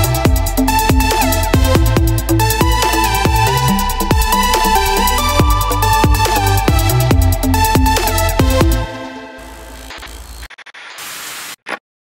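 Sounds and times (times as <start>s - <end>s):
stuttering static hiss: 9.4s - 11.8s.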